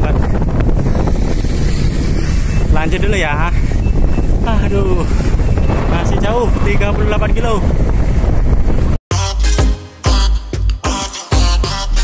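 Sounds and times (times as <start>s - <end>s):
road traffic: 0.0s - 9.0s
wind buffeting microphone: 0.0s - 9.0s.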